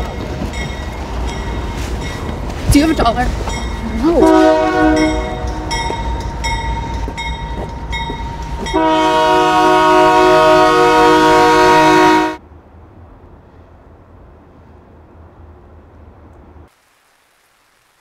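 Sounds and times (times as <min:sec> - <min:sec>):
crossing bell dinging: 0:00.0 - 0:12.3
train horn blast: 0:04.0 - 0:06.0, 0:08.7 - 0:12.4.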